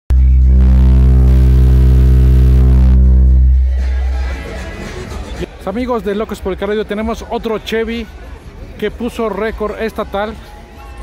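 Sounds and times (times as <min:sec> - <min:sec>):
deep bass tone from subwoofers: 0:00.1 - 0:04.4.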